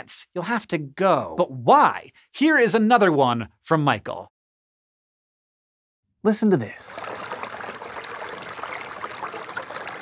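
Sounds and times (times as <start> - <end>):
stream water burbling: 6.9 - 10.0.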